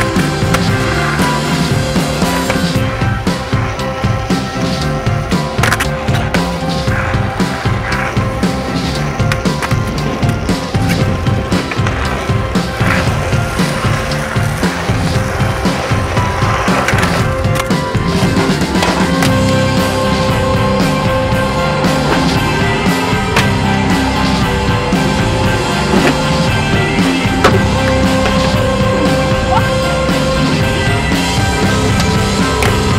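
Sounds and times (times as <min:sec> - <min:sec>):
melodic music: 0:00.0 - 0:32.9
skateboard grinding on wood: 0:00.0 - 0:32.9
skateboard rolling on hard court: 0:00.0 - 0:32.9.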